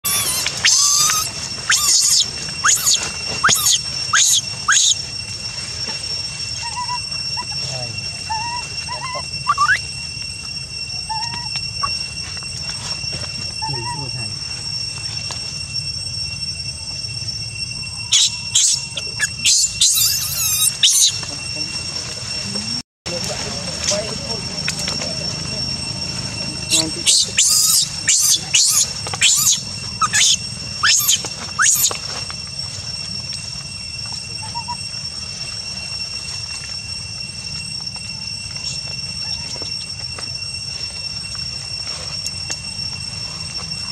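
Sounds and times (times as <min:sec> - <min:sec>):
monkey squealing: 0:00.0 - 0:05.1, 0:06.6 - 0:09.9, 0:11.0 - 0:12.1, 0:13.5 - 0:14.2, 0:18.1 - 0:21.3, 0:26.5 - 0:32.0, 0:34.4 - 0:34.9
steady high whine: 0:00.0 - 0:43.9.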